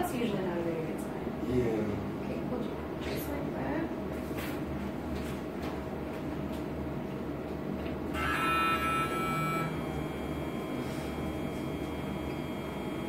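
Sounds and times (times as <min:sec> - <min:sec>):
low room hum: 0:00.0 - 0:13.0
x-ray machine beep: 0:08.1 - 0:13.0.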